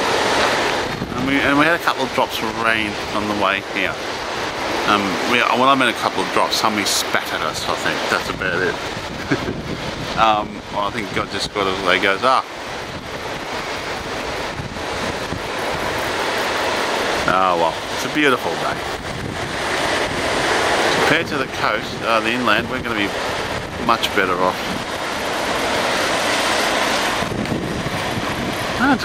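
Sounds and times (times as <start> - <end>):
ocean surf: 0.0 - 29.0
wind buffeting microphone: 0.0 - 29.0.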